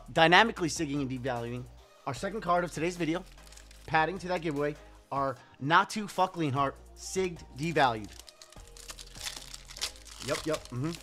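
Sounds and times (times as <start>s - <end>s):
foil wrapper crinkling: 3.3s - 3.9s, 8.0s - 11.0s.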